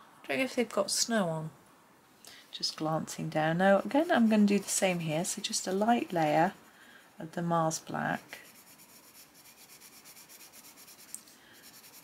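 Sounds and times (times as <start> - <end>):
coloured pencil shading on paper: 3.8 - 12.0.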